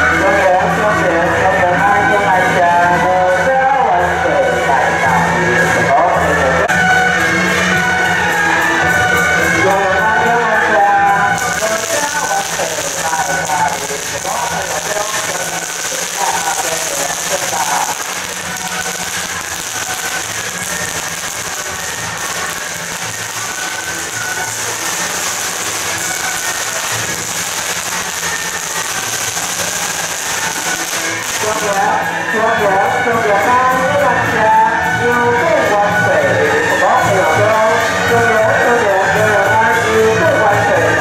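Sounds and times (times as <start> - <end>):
procession music: 6.2 - 41.0
firecrackers crackling: 7.1 - 34.9.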